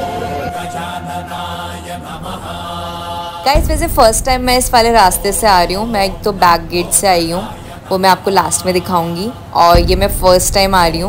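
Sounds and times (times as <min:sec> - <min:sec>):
loud low rumble: 0:00.0 - 0:11.0
mantra chanting: 0:00.0 - 0:11.0.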